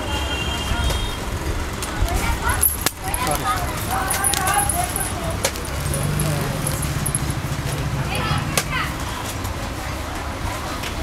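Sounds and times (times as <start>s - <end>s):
metal bangles jingling: 2.4s - 7.9s
background voices: 2.6s - 8.3s.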